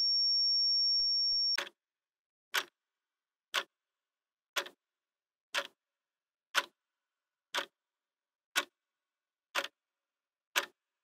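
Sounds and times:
high-pitched electronic beep: 0:00.0 - 0:01.6
clock ticking: 0:01.3 - 0:01.8, 0:02.5 - 0:02.8, 0:03.5 - 0:03.8, 0:04.5 - 0:04.8, 0:05.5 - 0:05.8, 0:06.5 - 0:06.9, 0:07.5 - 0:07.8, 0:08.5 - 0:08.9, 0:09.5 - 0:09.9, 0:10.5 - 0:11.0.

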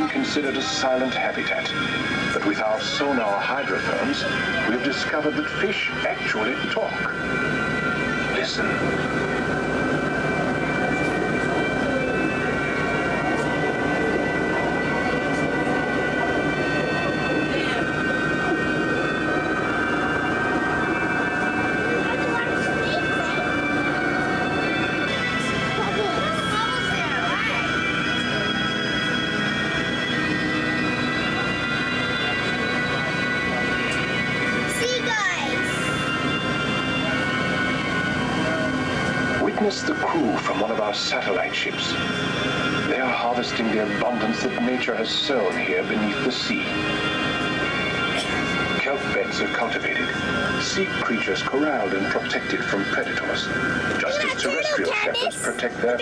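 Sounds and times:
held musical tones: 0:00.0 - 0:56.0.

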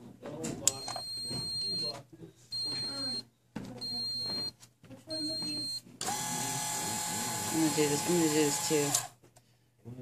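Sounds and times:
high-pitched buzzer beeping: 0:00.7 - 0:01.9, 0:02.6 - 0:03.2, 0:03.8 - 0:09.0.

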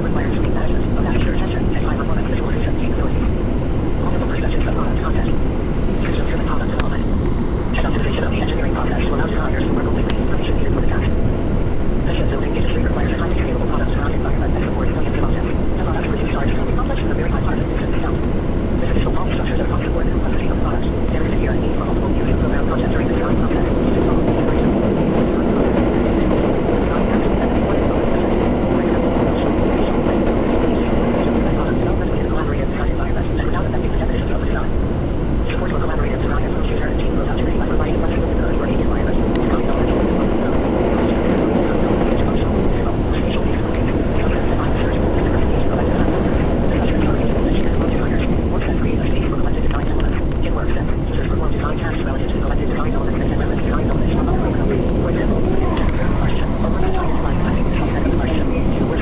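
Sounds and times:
train wheels rumbling on rails: 0:21.3 - 0:32.6.

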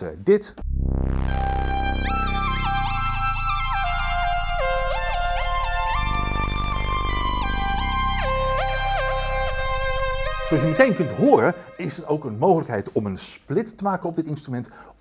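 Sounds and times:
gliding synth lead melody: 0:00.6 - 0:12.2
synth bass notes: 0:00.6 - 0:12.5.

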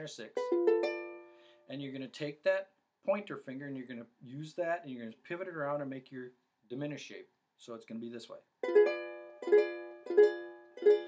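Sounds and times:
ukulele chord strummed: 0:00.3 - 0:01.5, 0:08.6 - 0:11.0.

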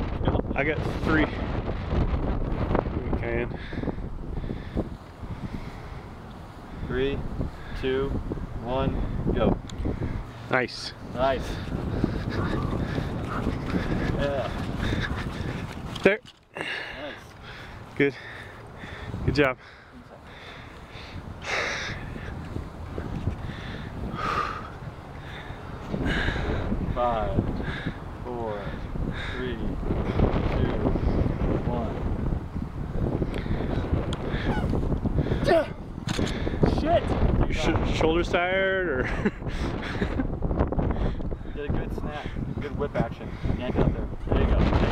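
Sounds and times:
wind buffeting microphone: 0:00.0 - 0:44.9.

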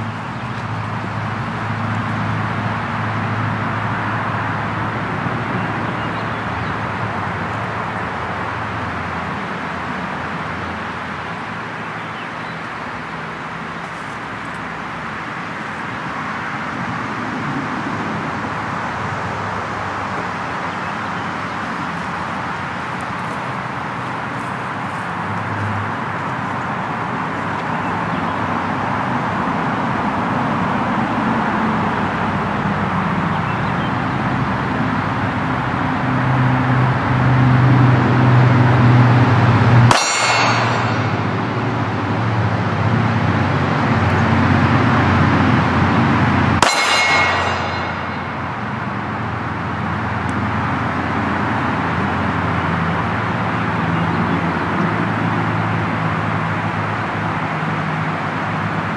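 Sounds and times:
steel target clanging: 0:39.9 - 0:42.2, 0:46.6 - 0:49.4.

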